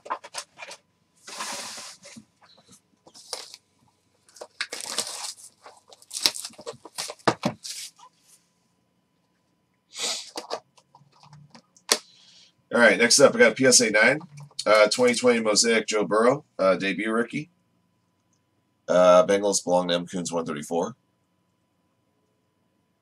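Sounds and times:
plastic shrink-wrap tearing: 0:04.4 - 0:07.2.

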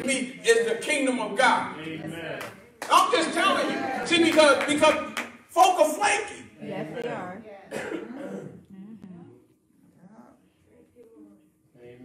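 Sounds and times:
short cough: 0:07.7 - 0:08.6.

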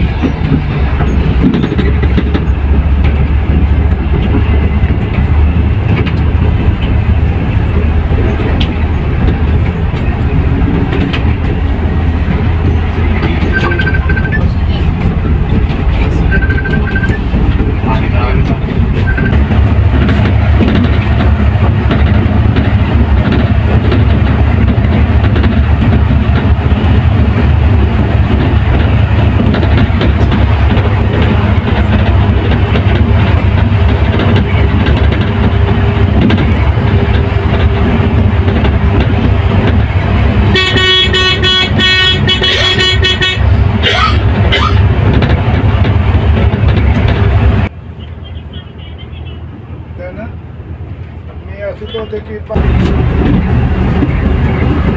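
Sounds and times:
coach engine and road noise: 0:00.0 - 0:54.9
pulsing horn: 0:40.5 - 0:44.7.

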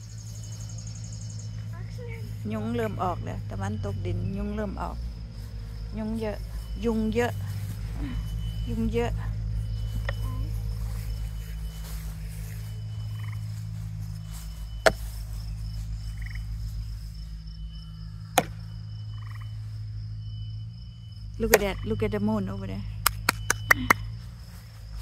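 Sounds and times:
frog calls: 0:00.0 - 0:24.6
insect chirps: 0:00.0 - 0:25.0
insects buzzing: 0:00.0 - 0:25.0
low steady hum: 0:00.0 - 0:25.0
sharp knocks: 0:14.8 - 0:15.0, 0:18.3 - 0:18.6.

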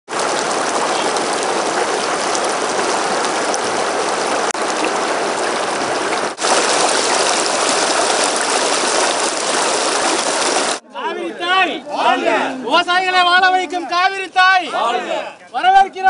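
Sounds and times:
river water rushing over rocks: 0:00.1 - 0:10.8.

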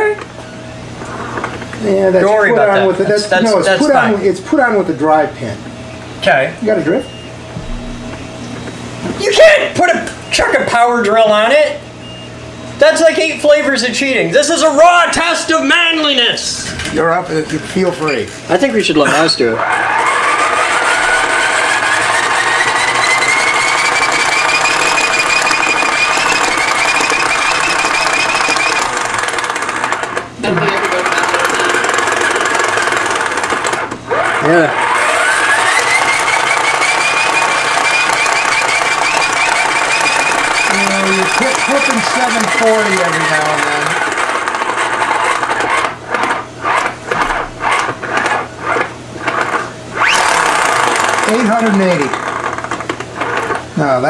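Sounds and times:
hand crank generator whining: 0:19.1 - 0:53.7.

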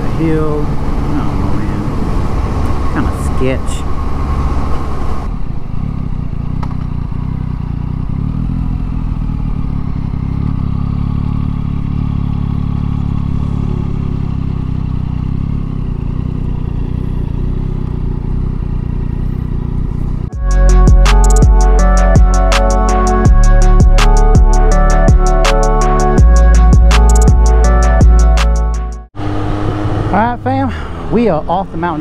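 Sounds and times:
motorcycle engine running: 0:00.0 - 0:32.0
music: 0:20.4 - 0:29.1.

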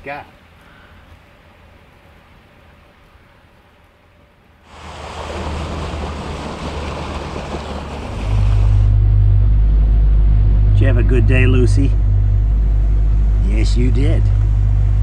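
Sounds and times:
boat engine low rumble: 0:04.0 - 0:15.0
water rushing in boat wake: 0:04.6 - 0:09.4.

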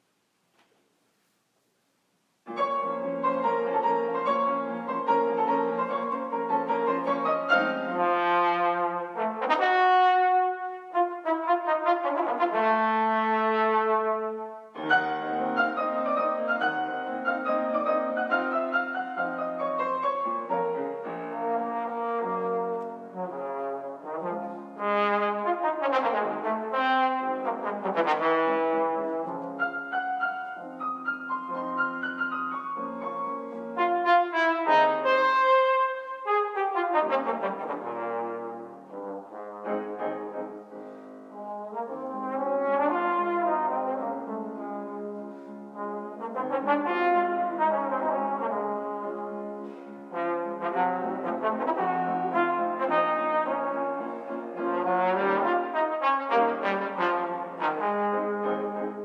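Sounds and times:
piano accompaniment: 0:02.4 - 0:59.0
brass instrument solo: 0:02.5 - 0:32.6, 0:33.5 - 0:59.0.

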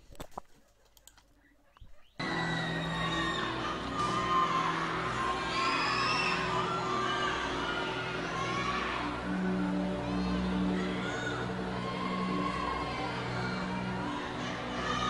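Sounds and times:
crowd cheering and whistling: 0:02.2 - 0:15.0.

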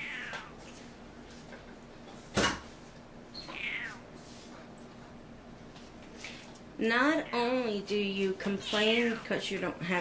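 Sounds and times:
cat meowing: 0:00.0 - 0:00.6, 0:03.4 - 0:04.0.

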